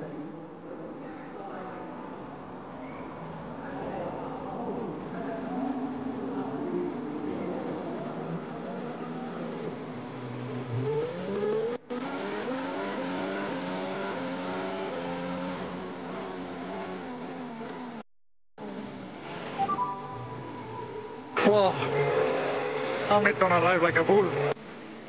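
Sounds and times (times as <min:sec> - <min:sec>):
race car engine accelerating: 0:05.6 - 0:18.0, 0:20.5 - 0:24.6.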